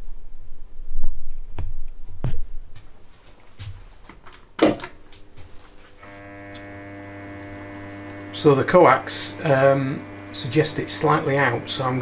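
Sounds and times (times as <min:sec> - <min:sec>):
milling machine motor humming: 0:06.0 - 0:12.0.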